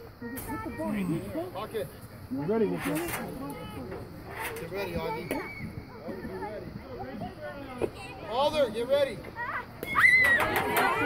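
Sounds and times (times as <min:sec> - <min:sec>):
excited crowd shouting: 0:09.4 - 0:11.0.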